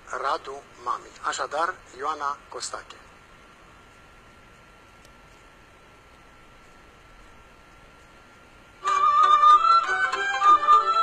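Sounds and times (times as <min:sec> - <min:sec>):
folk band with violin: 0:08.9 - 0:11.0.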